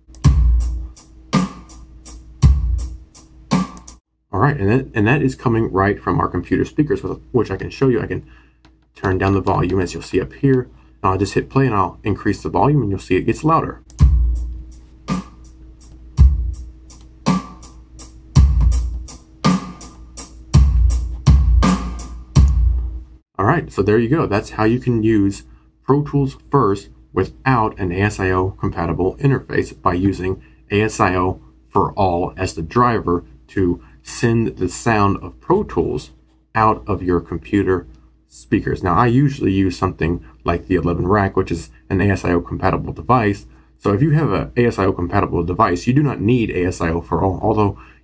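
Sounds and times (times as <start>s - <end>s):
drum-kit kick and snare pattern: 0.0s - 4.0s, 13.9s - 23.0s
hi-hat ticks: 0.0s - 4.0s, 13.9s - 19.2s.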